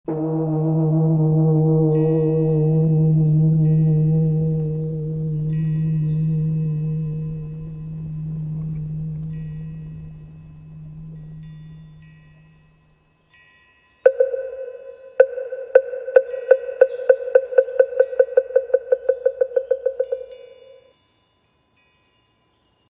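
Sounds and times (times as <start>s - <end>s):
deep bell ringing: 0.6s - 13.0s
high tinkling chimes: 5.4s - 22.9s.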